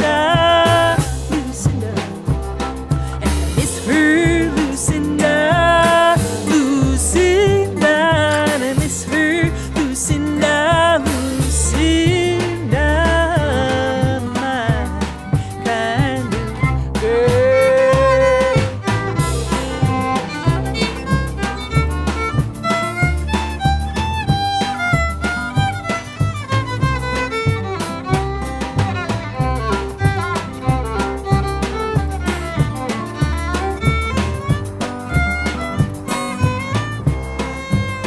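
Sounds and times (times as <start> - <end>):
drums: 0.0 - 38.0
fiddle playing lead: 0.0 - 38.0
strummed rhythm guitar: 0.0 - 38.0
upright bass: 0.0 - 38.0.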